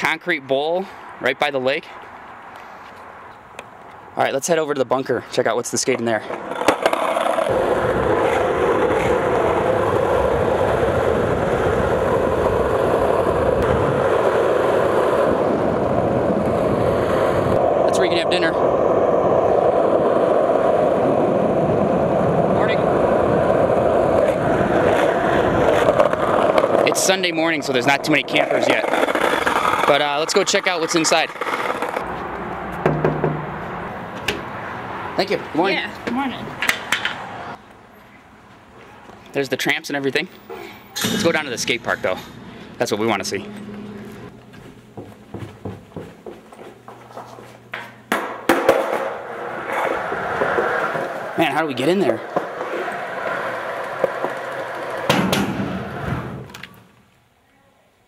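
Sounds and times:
skateboard wheels rolling on asphalt: 0:00.1 - 0:40.9, 0:43.8 - 0:57.2
skateboard hitting ground: 0:06.3 - 0:15.4, 0:24.2 - 0:27.0, 0:28.4 - 0:29.9, 0:32.8 - 0:33.6, 0:47.8 - 0:51.4, 0:52.2 - 0:57.0
footsteps on hard floor: 0:44.4 - 0:47.9.

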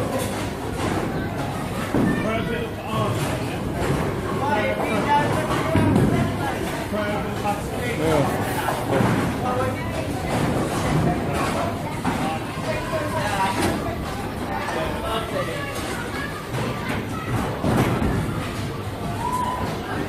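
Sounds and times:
people talking: 0:01.1 - 0:20.0.

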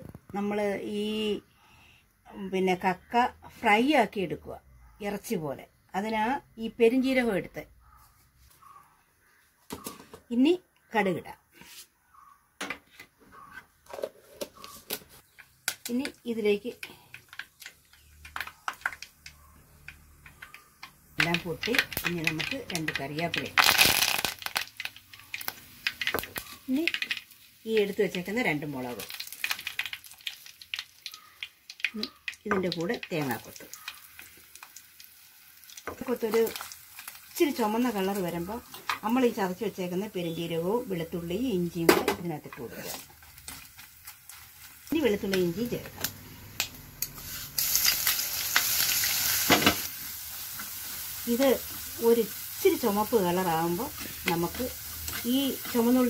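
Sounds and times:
seeds popping and crackling: 0:15.2 - 0:39.7, 0:42.6 - 0:56.0
leaves sizzling in hot oil: 0:15.3 - 0:56.0.

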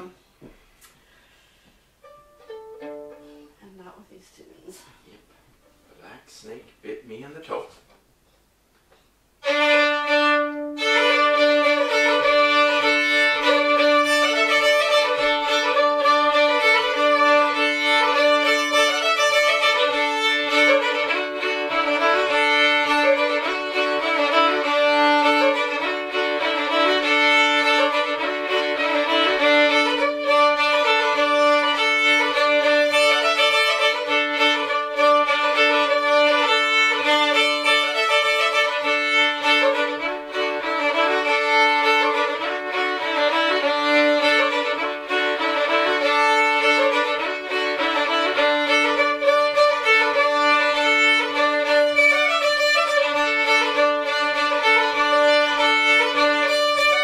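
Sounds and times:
fiddle tune with drone string: 0:02.0 - 0:03.6, 0:09.4 - 0:57.0.

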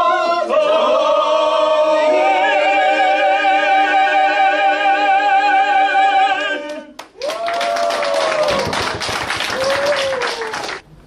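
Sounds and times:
audience applauding: 0:07.0 - 0:10.8.

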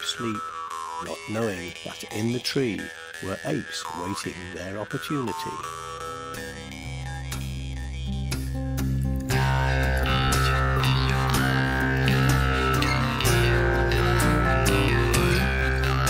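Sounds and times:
jew's harp twanging: 0:00.0 - 0:16.0.

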